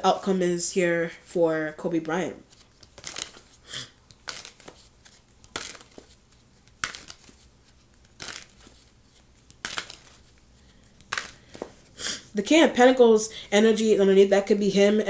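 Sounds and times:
cards being shuffled: 1.9s - 12.0s.

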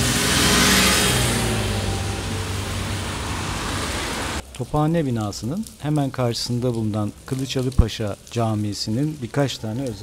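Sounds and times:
large vehicle motor hum: 0.0s - 4.4s
wet road hiss: 0.0s - 9.5s.

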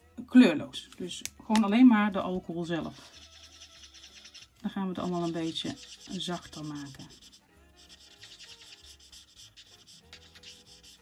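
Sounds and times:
quiet background music: 0.0s - 11.0s
marker scratching on card: 2.9s - 11.0s.

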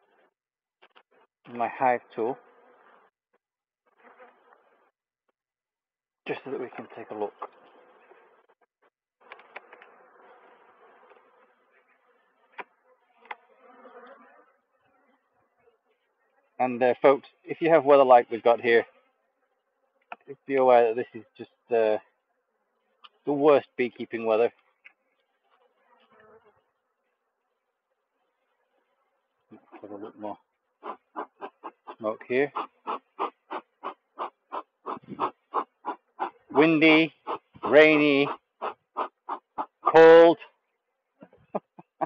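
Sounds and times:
bees buzzing: 6.8s - 16.4s, 27.7s - 40.2s.

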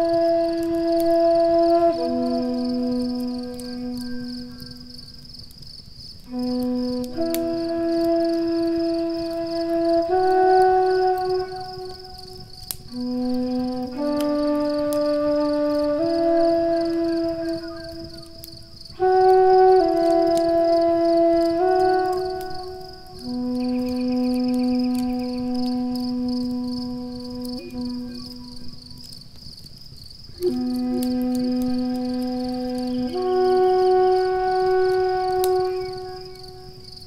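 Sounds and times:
flute playing slow melody: 0.0s - 5.6s, 6.2s - 29.4s, 30.3s - 37.0s
wood fire crackling: 0.0s - 37.0s.

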